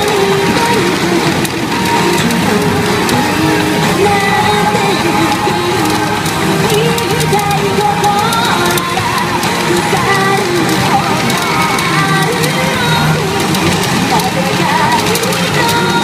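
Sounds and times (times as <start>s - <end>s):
pop song with singing: 0.0s - 16.0s.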